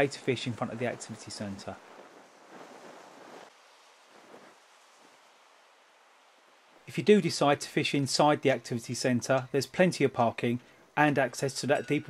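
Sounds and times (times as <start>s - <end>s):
sea wash on shingle: 0.0s - 7.0s
wind: 0.0s - 12.0s.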